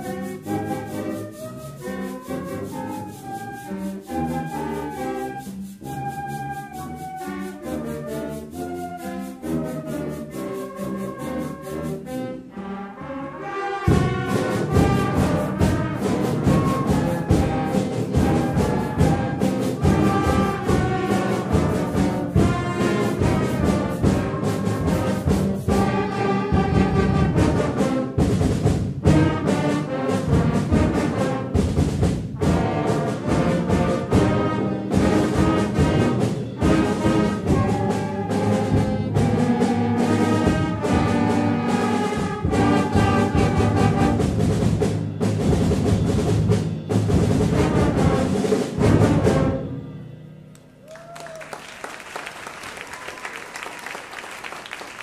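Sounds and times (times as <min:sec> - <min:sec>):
percussion strikes: 0:00.0 - 0:12.0, 0:13.9 - 0:51.1
concert band playing: 0:00.0 - 0:55.0.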